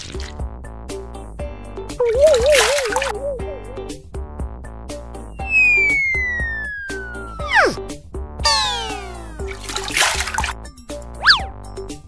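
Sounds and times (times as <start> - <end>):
water splashing: 2.0 - 3.2, 8.6 - 10.6
warbling tone: 2.0 - 3.6, 5.4 - 7.8.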